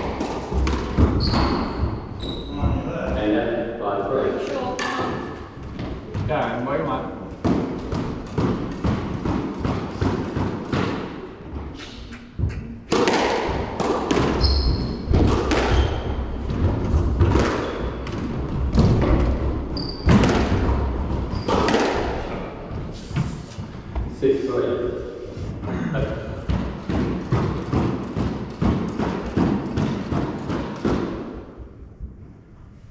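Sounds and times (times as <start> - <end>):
squash ball cracking off racquets: 0.0 - 2.0, 7.3 - 22.8, 26.4 - 31.6
shoes squeaking on wooden floor: 1.1 - 2.9, 14.3 - 16.5, 19.7 - 20.3
ball thudding against walls: 7.4 - 23.3.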